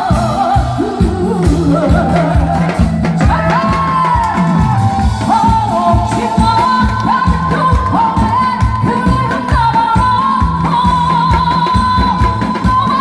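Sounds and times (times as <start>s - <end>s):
backing track with drum beat: 0.0s - 13.0s
woman singing into a microphone: 0.0s - 13.0s.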